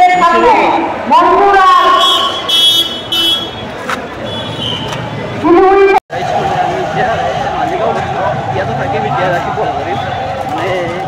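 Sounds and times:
street traffic noise: 0:00.0 - 0:11.0
vehicle horn honking: 0:01.9 - 0:04.9.

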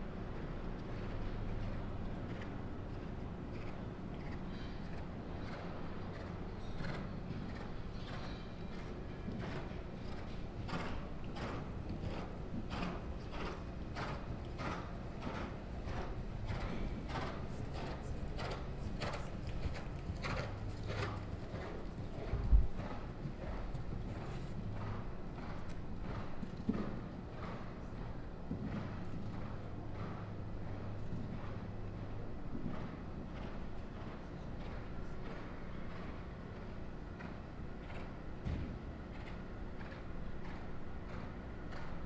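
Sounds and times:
low hum of hall: 0:00.0 - 0:42.0
horse hoofbeats on sand: 0:00.8 - 0:42.0.

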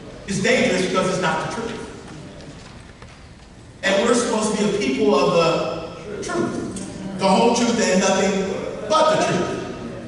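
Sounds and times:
man preaching: 0:00.3 - 0:02.0, 0:03.8 - 0:09.8.

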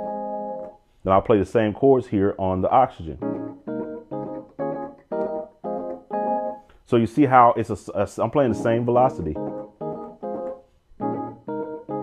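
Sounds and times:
keyboard chords: 0:00.0 - 0:00.9, 0:02.2 - 0:12.0.

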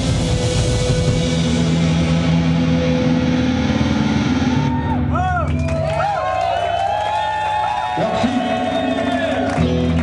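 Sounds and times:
live rock band playing: 0:00.0 - 0:05.8, 0:09.4 - 0:10.0.

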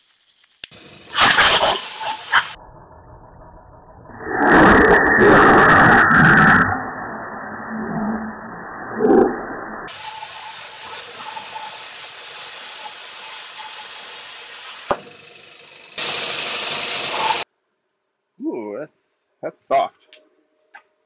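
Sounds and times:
plasma cutter hissing: 0:00.0 - 0:02.6, 0:09.9 - 0:17.4.

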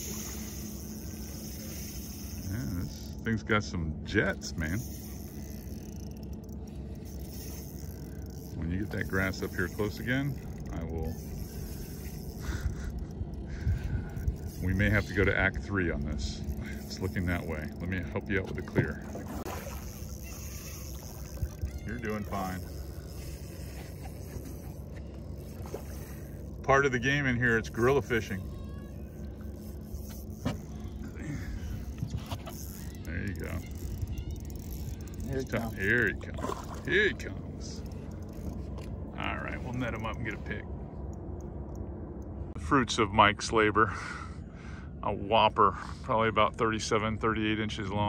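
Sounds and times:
fishing reel whirring: 0:00.0 - 0:42.3
low even rumble: 0:00.0 - 0:48.0
wind rumble on microphone: 0:10.3 - 0:17.0, 0:28.3 - 0:35.4.

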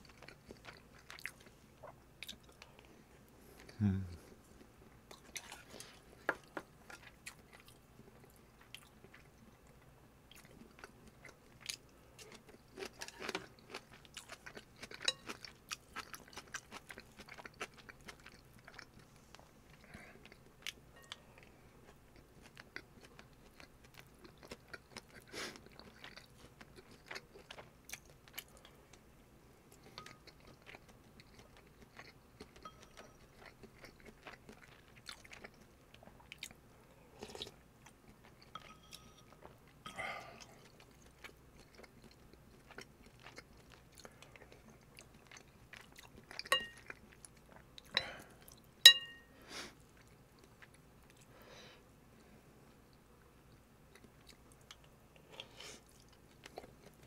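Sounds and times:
chewing food: 0:00.0 - 0:51.4, 0:52.2 - 0:57.0.

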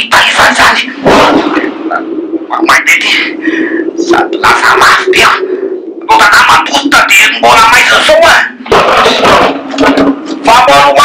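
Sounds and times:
steady low hum: 0:00.0 - 0:11.0
voices speaking: 0:00.0 - 0:11.0.

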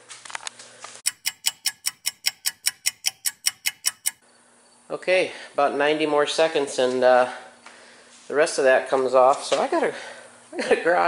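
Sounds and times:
fast sharp ticking: 0:01.1 - 0:04.2.

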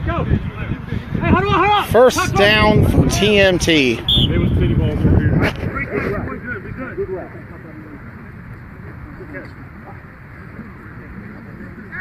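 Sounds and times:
players talking and calling out: 0:00.0 - 0:12.0.

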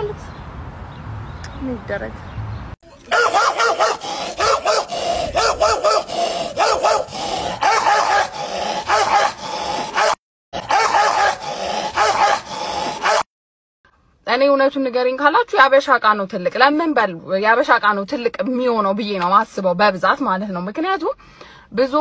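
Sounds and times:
man imitating dog yelping: 0:02.9 - 0:13.2.

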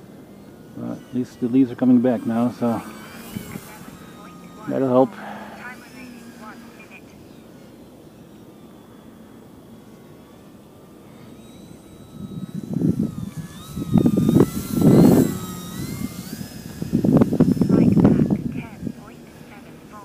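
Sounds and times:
electric motor and propeller whine: 0:00.0 - 0:20.0
wind buffeting microphone: 0:03.1 - 0:04.6, 0:11.7 - 0:19.1.

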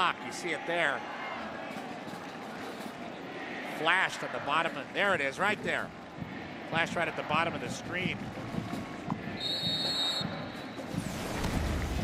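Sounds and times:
high whistle tone: 0:09.4 - 0:10.9.

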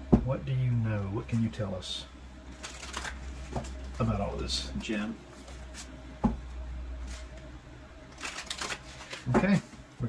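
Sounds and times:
cards being shuffled: 0:02.5 - 0:04.1, 0:05.4 - 0:06.0, 0:08.1 - 0:09.8.

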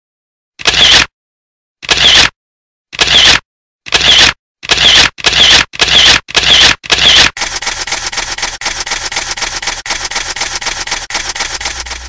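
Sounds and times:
fast crackling rattle: 0:04.9 - 0:12.0.

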